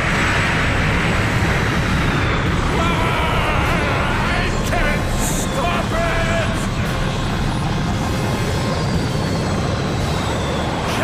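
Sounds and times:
character yelling: 2.7s - 6.7s.

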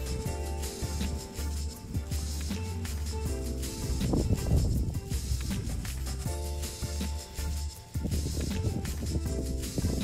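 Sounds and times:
background music with bass and drums: 0.0s - 10.0s.

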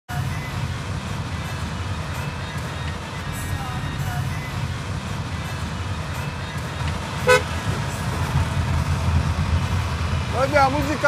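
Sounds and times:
car engine and road rumble: 0.0s - 11.0s.

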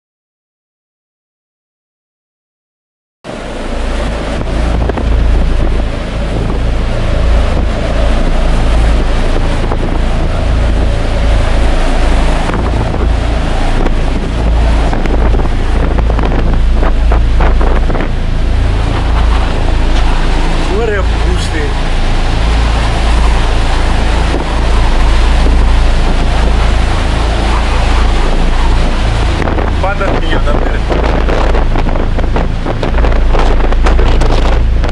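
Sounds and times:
rough sea: 3.3s - 34.9s
wind buffeting microphone: 3.3s - 34.9s.

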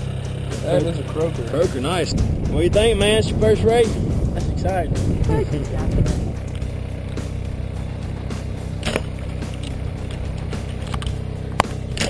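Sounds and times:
boat motor drone: 0.0s - 12.0s
sharp click: 8.8s - 12.0s.

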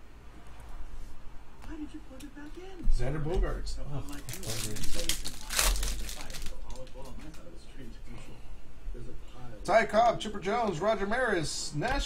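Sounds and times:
foil wrapper crinkling: 4.1s - 7.2s.

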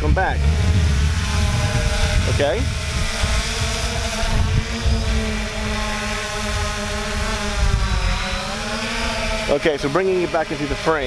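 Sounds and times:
wind rumble on microphone: 0.0s - 10.0s
drone propellers buzzing: 0.0s - 11.0s.

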